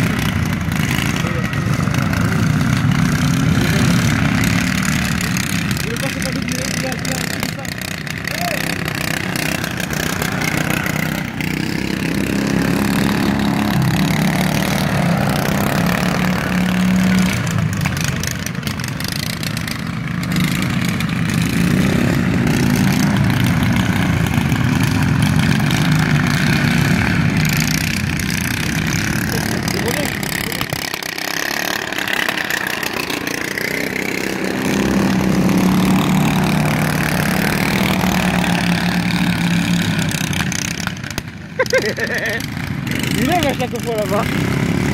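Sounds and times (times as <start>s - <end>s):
racing lawn tractor engines: 0.0s - 44.9s.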